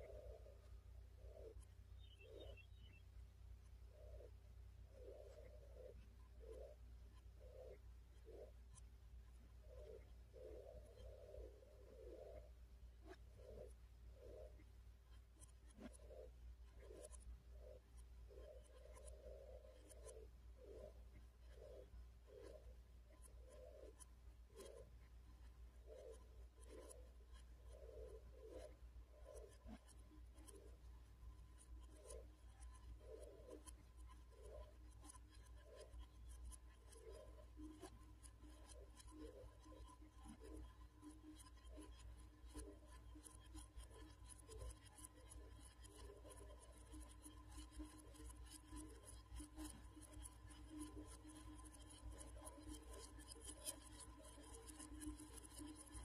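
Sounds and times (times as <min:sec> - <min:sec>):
soft scratchy pulses: 0:00.0 - 0:56.0.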